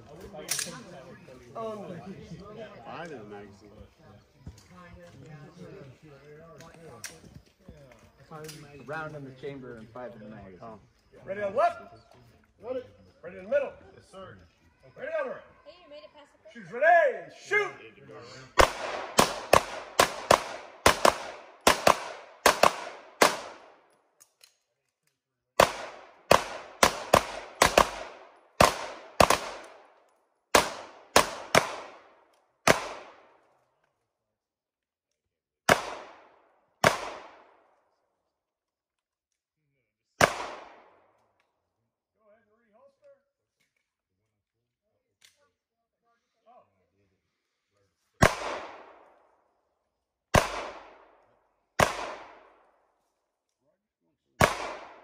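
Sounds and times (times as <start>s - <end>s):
handgun shots: 30.6s - 32.0s, 32.6s - 33.2s, 48.2s - 49.0s, 50.3s - 51.0s, 51.8s - 52.5s, 54.4s - 55.0s.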